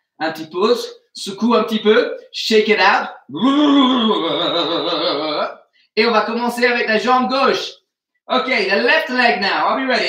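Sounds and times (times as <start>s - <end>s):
man groaning: 3.3s - 5.5s.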